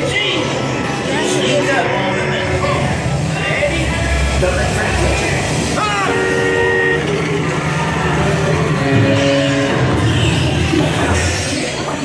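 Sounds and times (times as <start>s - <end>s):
indistinct voices: 0.0s - 12.0s
ride vehicle rumbling: 0.0s - 12.0s
horn-like chord: 6.0s - 7.2s, 8.6s - 10.4s.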